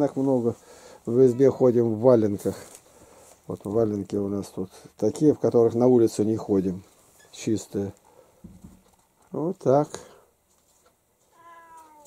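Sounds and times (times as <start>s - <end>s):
cat meowing: 11.3s - 12.0s.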